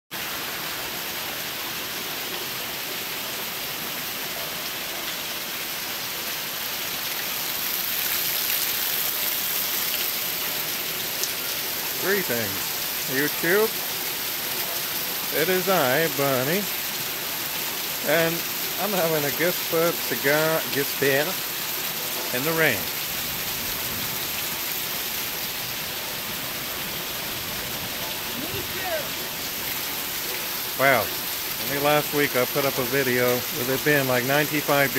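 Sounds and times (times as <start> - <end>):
heavy rain pouring: 0.1 - 34.9.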